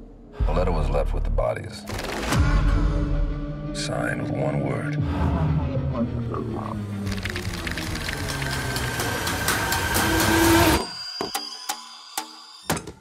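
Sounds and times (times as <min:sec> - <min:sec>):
rapid ticking clicks: 0:07.1 - 0:09.6.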